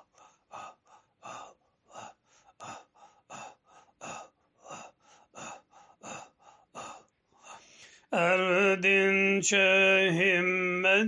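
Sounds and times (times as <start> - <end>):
rhythmic breath chanting: 0.0 - 8.3.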